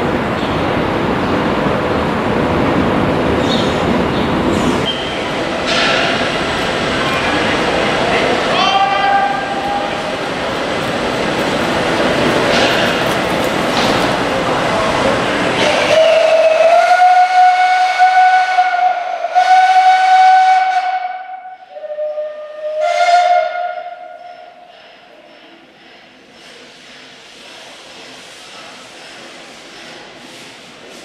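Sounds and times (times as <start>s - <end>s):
loud rushing steam: 0.0s - 23.6s, 26.2s - 31.0s
steam railway whistle: 8.6s - 10.0s, 15.6s - 24.6s.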